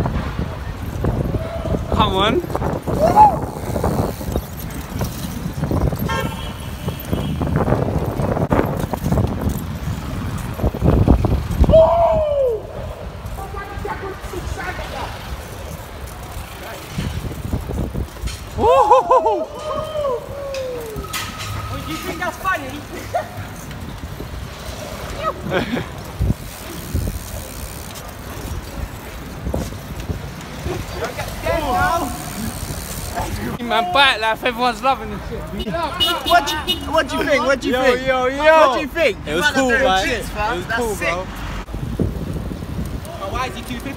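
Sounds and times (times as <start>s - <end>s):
wind rumbling on microphone: 0.0s - 33.6s, 41.5s - 43.9s
road noise from bicycles: 0.0s - 43.9s
traffic noise: 0.0s - 43.9s.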